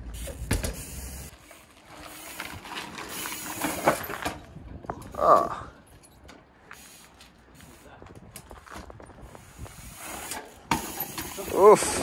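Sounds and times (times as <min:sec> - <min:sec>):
trials bike ticks and scuffs: 0:00.0 - 0:12.0
person exclaiming: 0:11.4 - 0:12.0.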